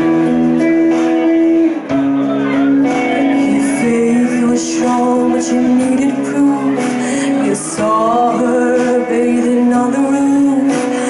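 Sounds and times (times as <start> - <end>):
electric guitar ringing chords: 0.0 - 11.0.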